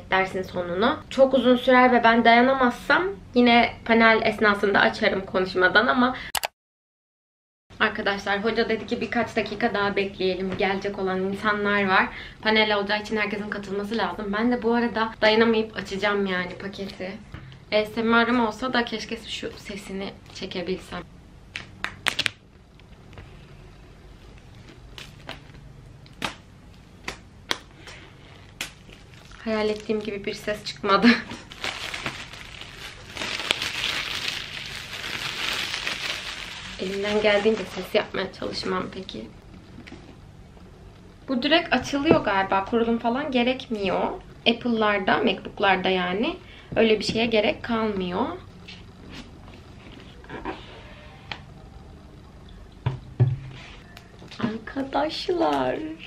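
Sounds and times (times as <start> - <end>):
plastic shrink wrap crackling: 28.3 - 38.2.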